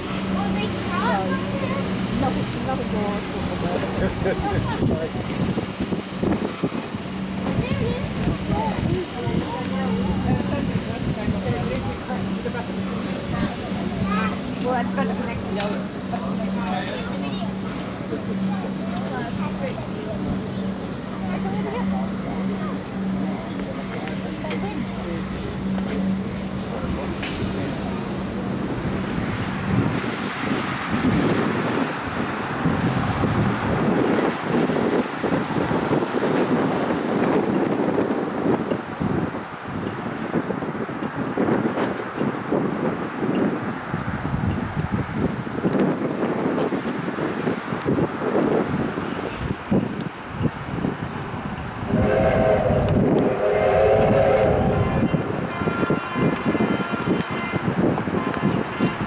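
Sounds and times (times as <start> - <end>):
steam locomotive chuffing: 0.0 - 33.5, 51.5 - 57.3.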